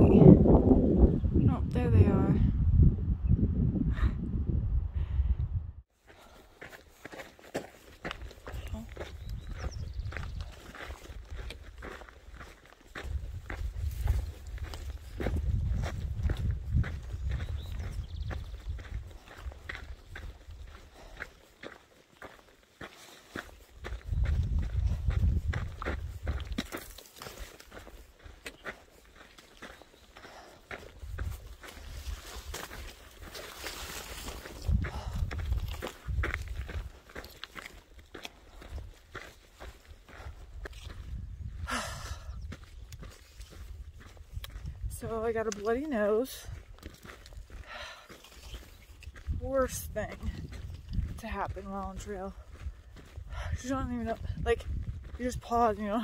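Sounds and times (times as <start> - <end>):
low rumbles on microphone: 0.0 - 5.8, 13.1 - 19.7, 23.9 - 26.6
footsteps on rocky dirt trail: 6.0 - 56.0.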